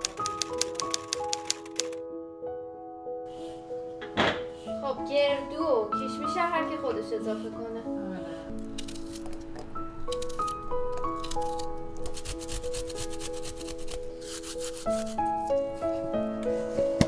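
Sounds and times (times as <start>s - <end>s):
melodic background music: 0.0s - 17.0s
grater rasping against food: 11.2s - 15.2s.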